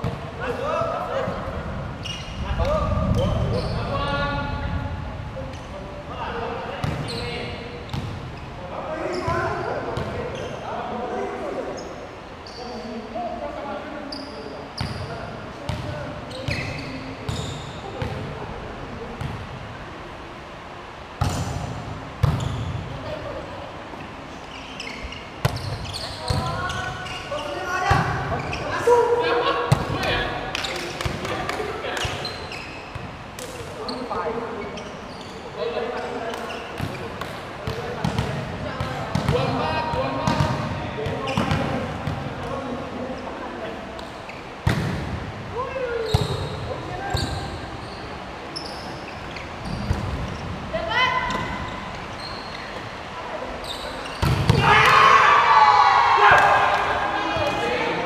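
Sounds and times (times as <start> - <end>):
ball hitting hard court floor: 44.6 - 45.2, 54.2 - 55.0.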